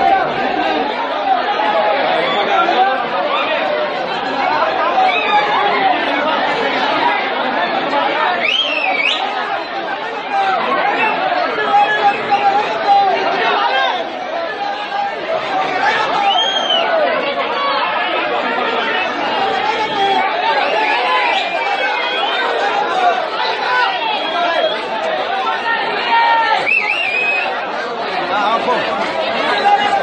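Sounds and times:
crowd talking and shouting: 0.0 - 30.0.

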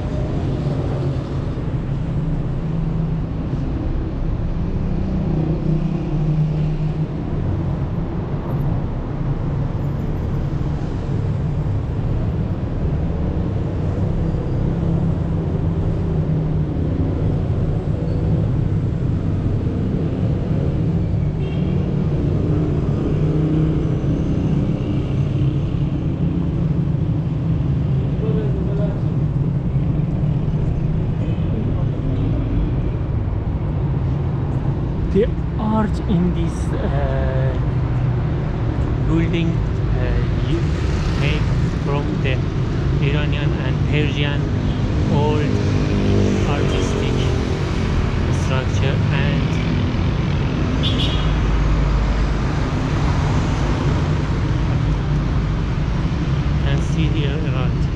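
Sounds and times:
city traffic rumble: 0.0 - 57.9.

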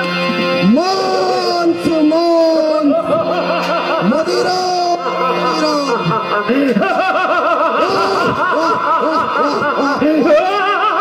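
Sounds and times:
man laughing theatrically: 2.5 - 11.0.

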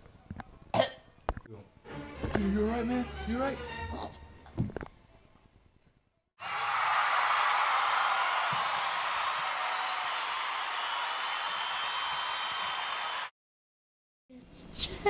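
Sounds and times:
crowd applause: 6.4 - 13.3.

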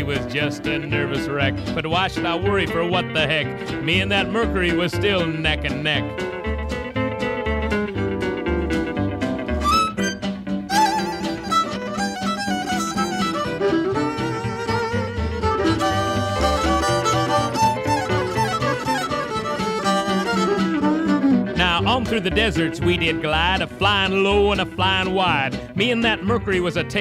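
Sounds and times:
fiddle melody: 0.0 - 27.0
guitar: 0.0 - 27.0.

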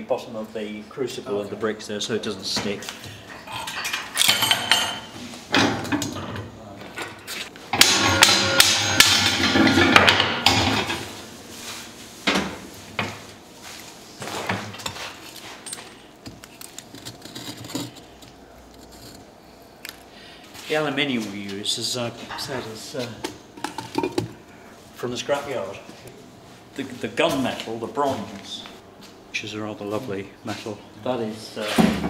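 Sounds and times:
crucible and iron tools clanking: 16.8 - 19.3.

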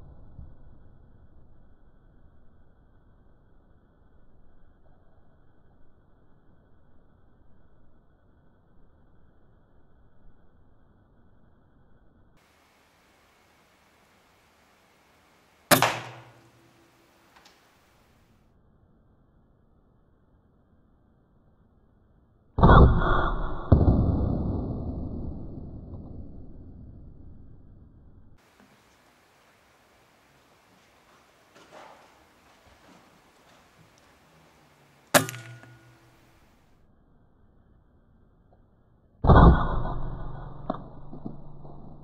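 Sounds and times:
air rifle shot: 15.7 - 16.8, 22.6 - 25.0, 35.1 - 36.3
air rifle shot with metallic ring: 15.7 - 16.8, 35.2 - 36.3.

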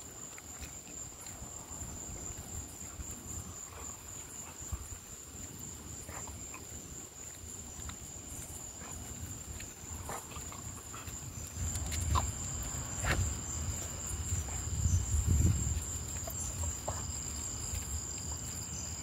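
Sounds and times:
crickets chirring: 0.0 - 19.0.

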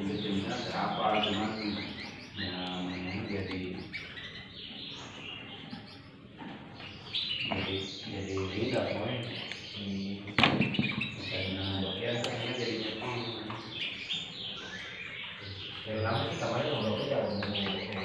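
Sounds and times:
canaries chirping and trilling: 0.0 - 18.0.

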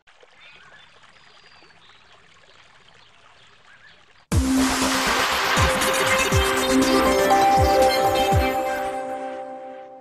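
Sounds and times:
faint trickling water: 0.0 - 8.5
electronic music with deep beat: 4.4 - 9.3.

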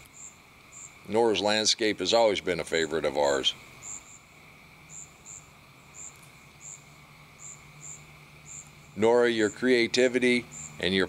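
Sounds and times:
faint steady hum: 0.0 - 11.0
high-pitched insect chirps: 0.0 - 11.0.

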